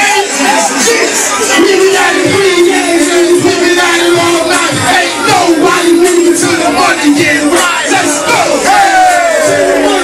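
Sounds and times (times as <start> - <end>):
hip hop beat: 0.0 - 10.0
man shouting into a microphone: 0.0 - 10.0.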